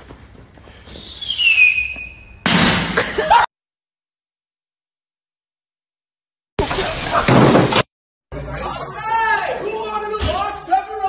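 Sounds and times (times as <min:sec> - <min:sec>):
high whistle gliding down: 0:01.0 - 0:02.2.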